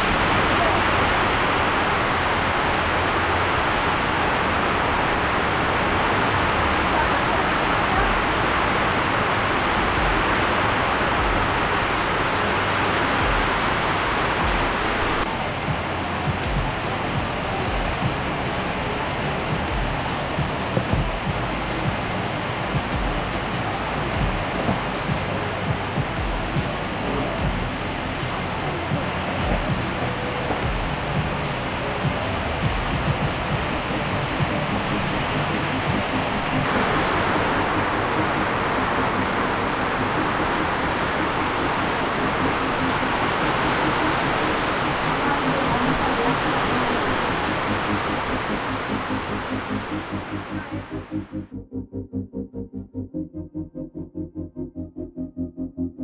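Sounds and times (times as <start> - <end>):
heavy rain on metal roof: 0.0 - 51.1
sharp rain ticks: 0.0 - 51.3.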